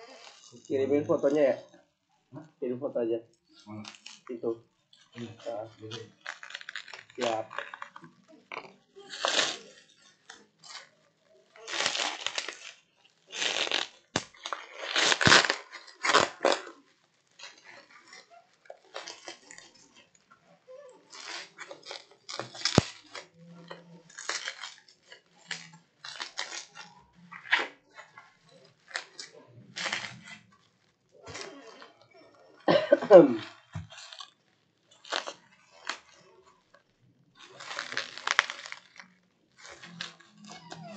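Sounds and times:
plastic crinkling and rustling: 0.0 - 1.8, 3.3 - 40.9.

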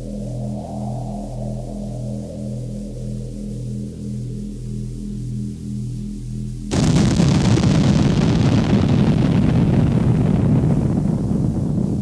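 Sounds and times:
low rumble: 0.0 - 12.0
loud boom crash: 6.7 - 12.0.

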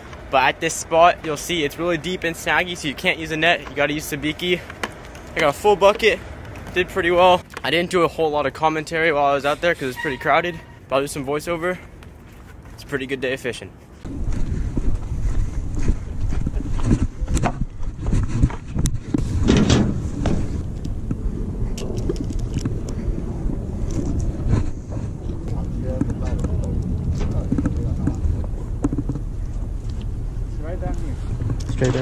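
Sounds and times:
wind rumble on microphone: 14.0 - 32.0.

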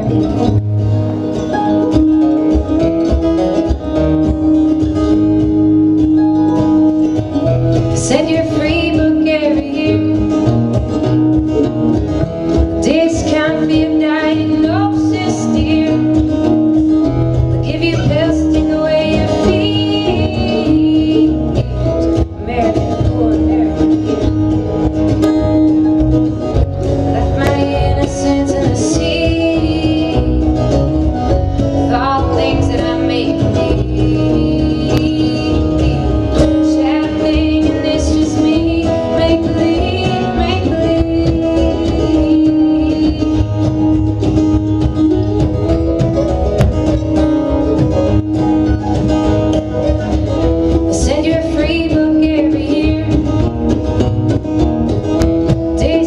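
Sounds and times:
woman singing lead: 0.0 - 2.8, 3.8 - 16.9, 17.6 - 25.9, 27.0 - 44.8, 47.3 - 54.4, 55.4 - 56.0
folk-rock band playing: 0.0 - 56.0.

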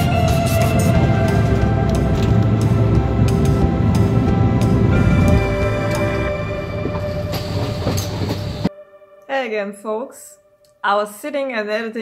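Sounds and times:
bus engine and road rumble: 0.0 - 8.7
rattling in bus cabin: 0.6 - 8.7.

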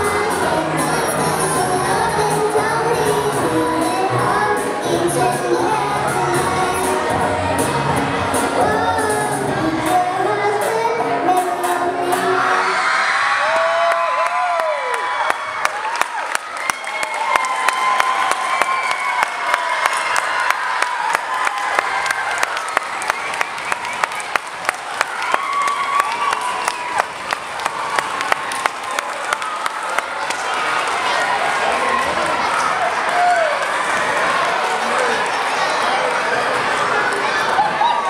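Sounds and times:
cheers and whoops: 12.4 - 30.2, 31.3 - 35.1, 37.2 - 38.0
audience clapping: 13.4 - 37.4.

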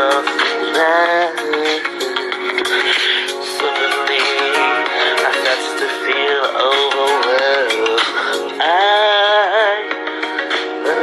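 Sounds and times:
pop backing music: 0.0 - 11.0.

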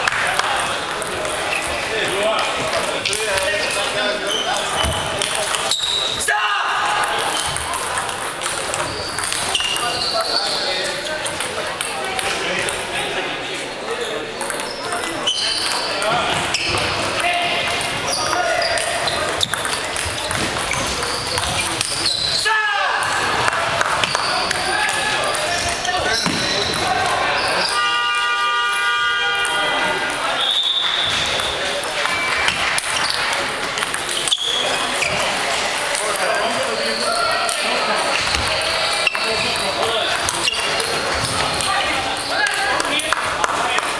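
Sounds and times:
table tennis balls bouncing: 0.0 - 6.2, 6.8 - 13.0, 14.2 - 22.4, 23.0 - 27.8, 30.9 - 43.9
people talking: 0.0 - 43.9
table tennis ball clicking: 7.0 - 9.9, 18.8 - 21.9, 31.4 - 34.5
horn-like pitched tone: 27.7 - 29.9.

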